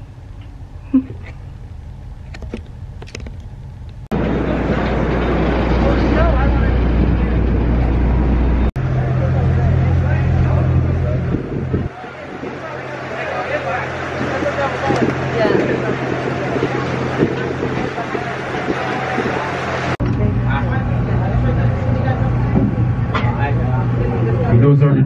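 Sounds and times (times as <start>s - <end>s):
boat engine droning: 0.0s - 25.0s
wind and water noise: 0.0s - 25.0s
indistinct voices: 4.1s - 25.0s.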